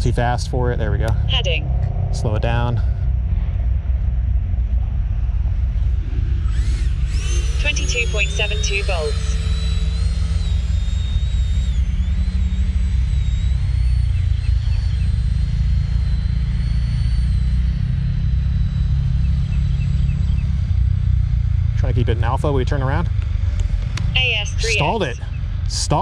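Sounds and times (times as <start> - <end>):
low rumble: 0.0 - 26.0
electric ducted fan whine: 3.4 - 26.0.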